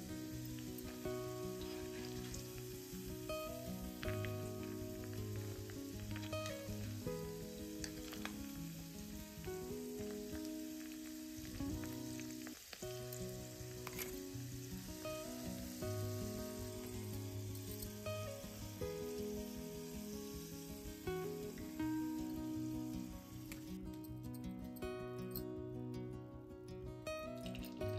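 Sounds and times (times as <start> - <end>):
food deep-frying in oil: 0.0 - 23.7
soft instrumental music: 0.0 - 27.9.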